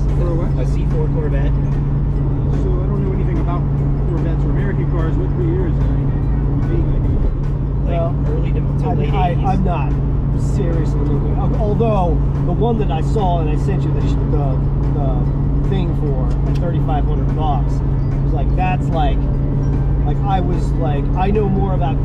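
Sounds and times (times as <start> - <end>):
car engine and tyres drone: 0.0 - 22.0
music: 0.0 - 22.0.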